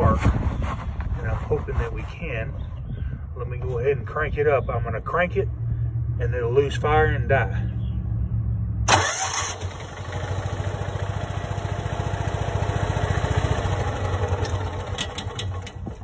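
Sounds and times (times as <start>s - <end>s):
small engine starting and running: 8.9s - 16.0s.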